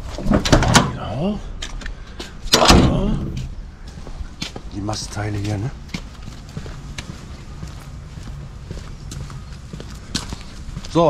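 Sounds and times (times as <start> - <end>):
footsteps on hard paving: 3.4 - 11.0.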